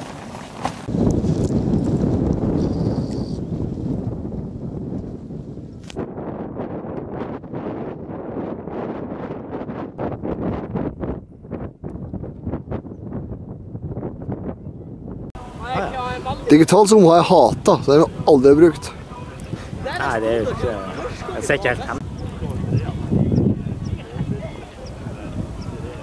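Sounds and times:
tent fabric crinkling: 0.0s - 3.3s
wind rumbling on microphone: 0.0s - 26.0s.

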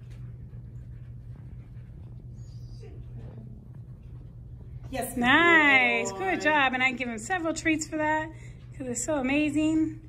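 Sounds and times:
steady low hum: 0.0s - 10.0s.

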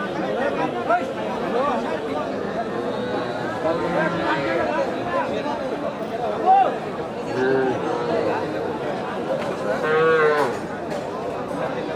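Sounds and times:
crowd chatter: 0.0s - 11.9s.

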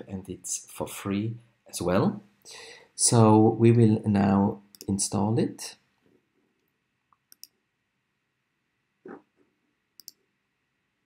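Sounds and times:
computer mouse clicks: 6.6s - 7.6s, 10.0s - 10.2s.

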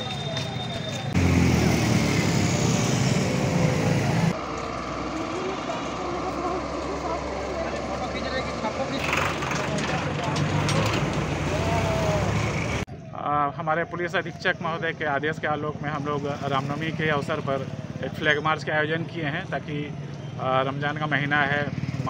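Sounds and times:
road traffic and engines: 0.0s - 22.0s
indistinct voices: 3.4s - 13.3s.

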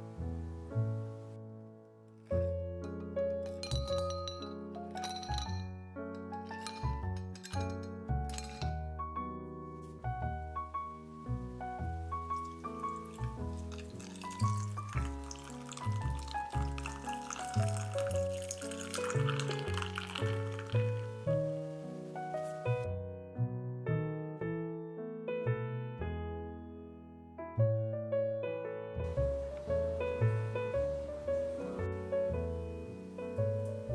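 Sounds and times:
background music: 0.0s - 23.8s, 29.0s - 33.9s
ice cubes clinking in glass: 3.4s - 5.8s, 6.4s - 8.8s, 12.3s - 21.1s
milk pouring into a glass: 12.2s - 21.3s.

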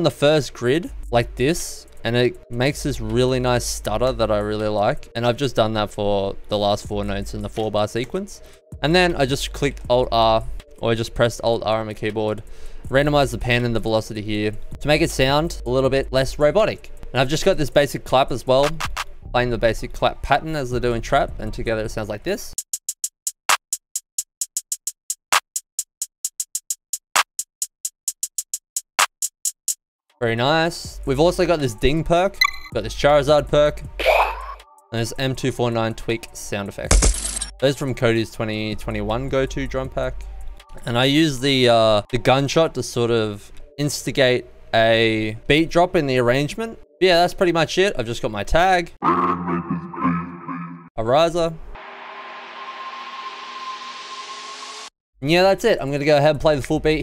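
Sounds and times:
drum machine clap: 18.6s - 19.1s, 22.6s - 29.8s
programmed trap drum loop: 22.6s - 29.8s
quick hi-hat ticks: 22.6s - 29.8s
white-noise riser hiss: 51.8s - 54.9s.

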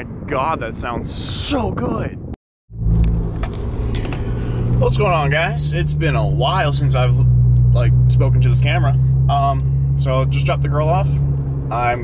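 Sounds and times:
car engine drone in cabin: 2.7s - 12.0s.

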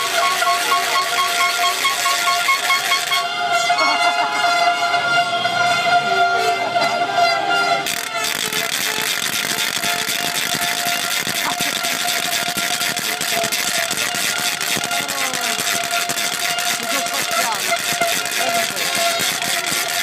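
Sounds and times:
horn holding long note: 0.0s - 8.4s
crowd of fans cheering: 0.0s - 20.0s.

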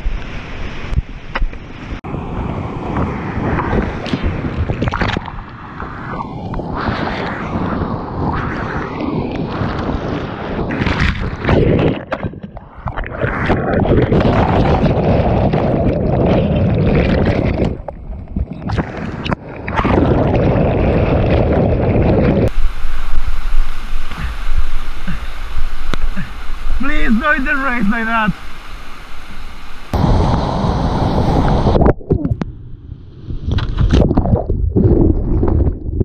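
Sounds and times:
whitewater rushing and crashing: 22.4s - 31.8s.

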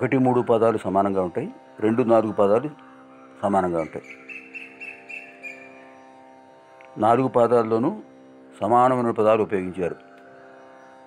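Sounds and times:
sustained drone: 0.0s - 11.0s.

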